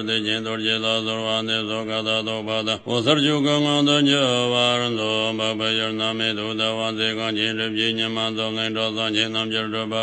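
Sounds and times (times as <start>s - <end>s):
man chanting in low voice: 0.0s - 10.0s.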